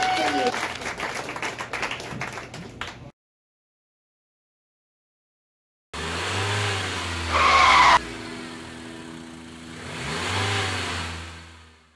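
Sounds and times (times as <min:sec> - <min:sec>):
engine-like sound effect: 0:06.0 - 0:11.9.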